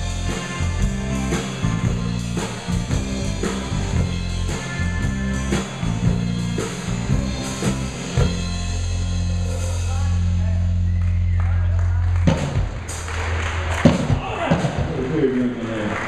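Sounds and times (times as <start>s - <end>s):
drum hits: 0.0s - 9.2s, 12.2s - 15.3s
live rock band: 0.0s - 16.0s.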